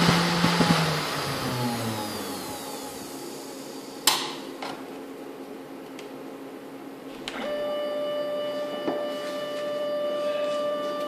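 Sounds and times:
stepper motor whine: 0:00.0 - 0:04.1, 0:07.3 - 0:11.0
machine hum: 0:00.0 - 0:11.0.

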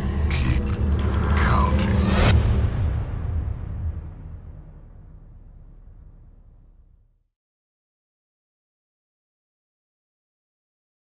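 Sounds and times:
low drone: 0:00.0 - 0:07.1
sharp hits: 0:00.1 - 0:07.1.

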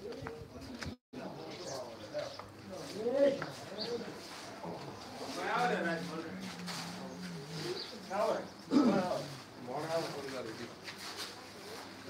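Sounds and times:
men talking in a crowded room: 0:01.2 - 0:11.7.

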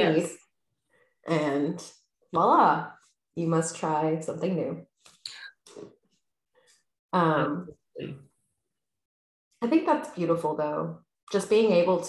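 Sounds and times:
person speaking: 0:00.0 - 0:00.4, 0:07.2 - 0:08.2.

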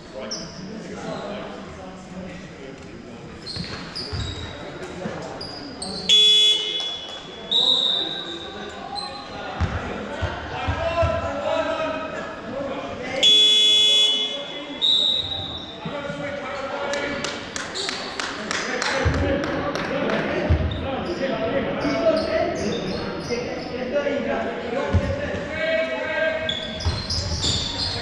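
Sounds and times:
players' voices echoing: 0:00.0 - 0:28.0.

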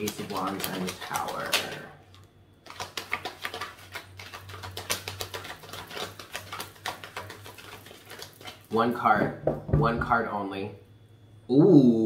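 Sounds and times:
cards being shuffled: 0:00.0 - 0:08.6.

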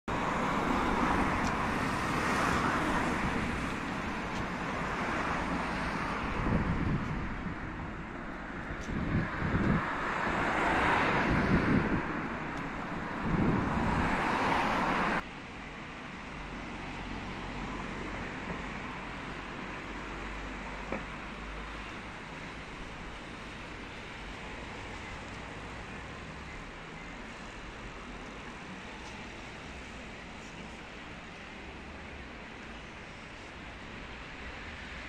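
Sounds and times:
cars passing close by: 0:00.1 - 0:35.0
wind on microphone: 0:03.0 - 0:04.6, 0:06.1 - 0:15.2.

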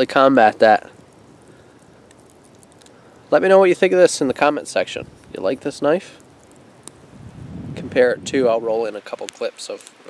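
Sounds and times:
faint steady hiss: 0:00.0 - 0:10.0
soft ticks: 0:01.0 - 0:03.0, 0:06.2 - 0:07.0.

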